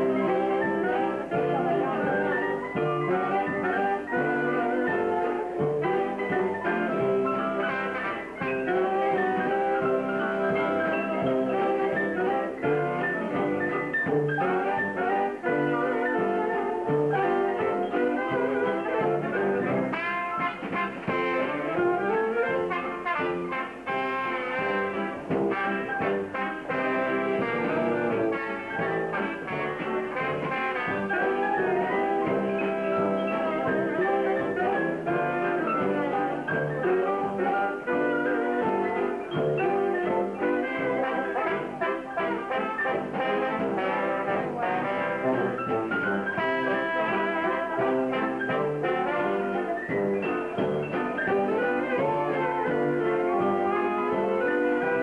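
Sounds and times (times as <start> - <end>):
dance band playing a ballad: 0.0 - 55.0
muted trombone: 0.0 - 55.0.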